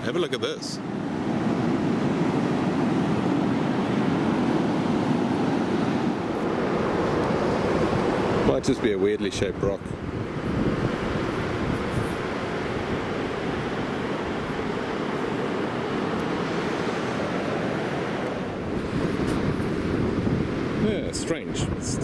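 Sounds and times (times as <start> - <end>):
surf breaking on shore: 0.0 - 22.0
wind buffeting microphone: 0.8 - 22.0.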